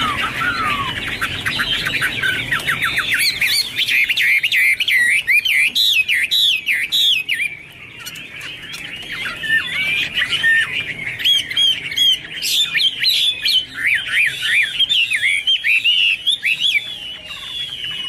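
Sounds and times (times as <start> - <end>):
bird singing whistled notes: 0.0 - 18.0.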